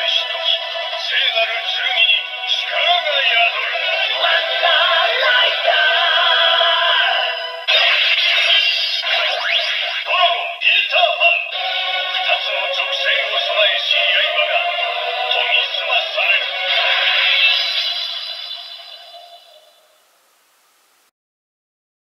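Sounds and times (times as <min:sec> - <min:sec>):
electronic song from toy speaker: 0:00.0 - 0:19.9.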